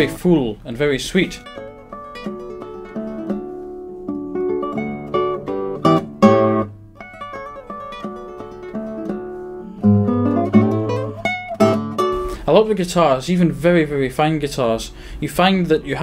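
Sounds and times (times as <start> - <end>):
classical guitar fingerstyle: 0.0 - 14.6.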